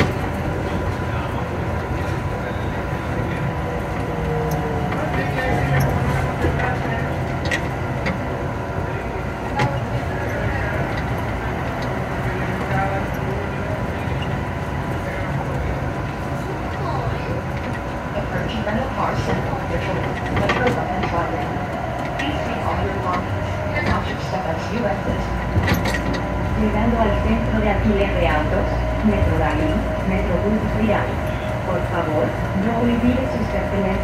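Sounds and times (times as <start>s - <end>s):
people mover hum and rumble: 0.0s - 34.0s.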